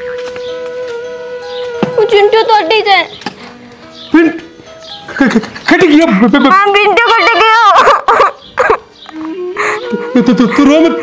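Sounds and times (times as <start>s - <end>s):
held background music note: 0.0s - 6.3s
woman crying: 5.1s - 8.4s, 9.4s - 11.0s.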